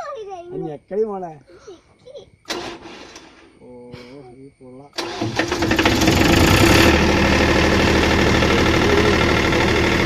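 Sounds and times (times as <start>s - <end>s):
engine starter cranking: 2.5s - 3.5s, 5.0s - 10.0s.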